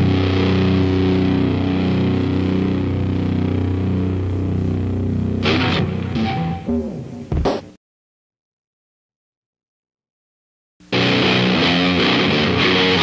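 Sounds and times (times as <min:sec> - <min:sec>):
distorted metal guitar chord: 0:00.0 - 0:07.3, 0:10.9 - 0:13.0.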